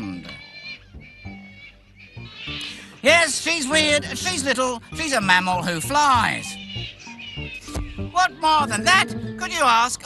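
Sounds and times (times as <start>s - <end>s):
fruit bat squealing call: 0.0s - 9.2s
soft background music: 0.0s - 10.0s.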